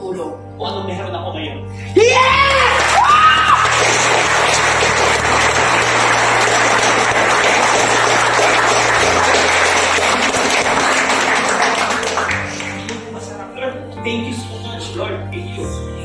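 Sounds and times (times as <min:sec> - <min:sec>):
person shouting: 0:02.0 - 0:03.6
audience applauding: 0:02.3 - 0:13.0.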